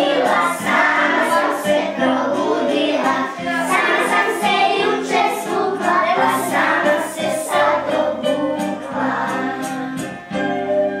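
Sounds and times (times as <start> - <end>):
group of voices singing: 0.0 - 10.5
instrumental backing: 0.0 - 11.0.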